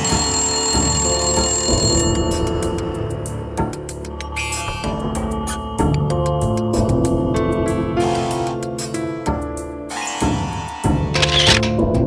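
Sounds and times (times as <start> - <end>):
telephone ringing: 0.0 - 3.8
background music: 0.0 - 12.0.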